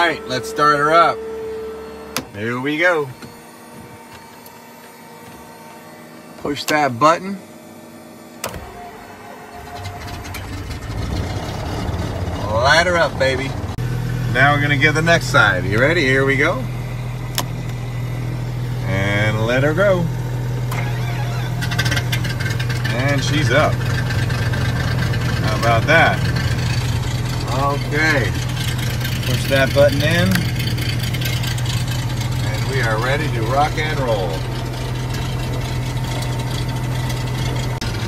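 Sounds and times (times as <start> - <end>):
airplane engine drone: 0.0 - 38.0
cockpit electrics humming and whining: 0.0 - 38.0
engine starting: 8.5 - 12.6, 20.7 - 25.2
rapid engine firing clicks: 9.6 - 13.8, 20.7 - 38.0.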